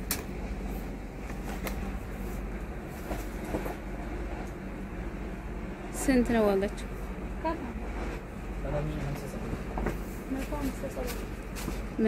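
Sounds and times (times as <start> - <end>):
faint hum: 0.0 - 12.0
low background rumble: 0.0 - 12.0.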